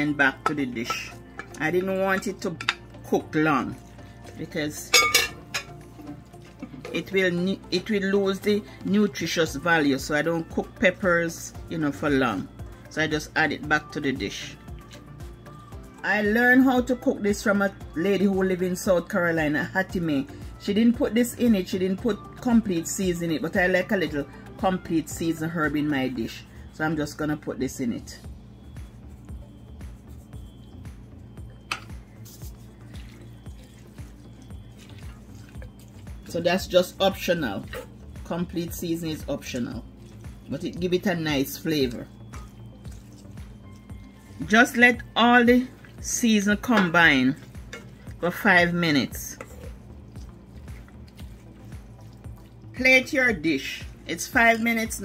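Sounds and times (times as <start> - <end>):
faint background music: 0.0 - 55.0
spoon stirring cabbage in skillet: 3.6 - 7.1, 14.6 - 15.6, 31.6 - 53.7
wooden spatula scraping metal pan: 49.2 - 49.8.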